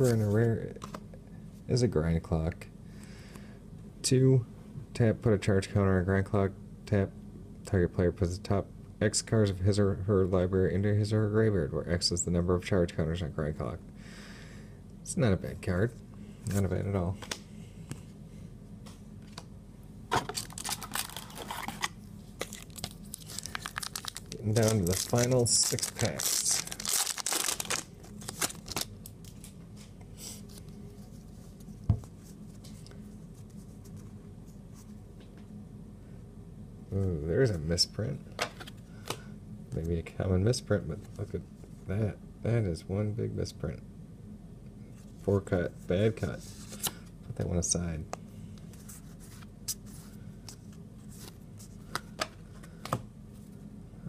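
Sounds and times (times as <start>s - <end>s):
steady low hum: 0.0s - 54.0s
cards rustling: 20.2s - 34.2s
foil wrapper crinkling: 20.3s - 29.5s.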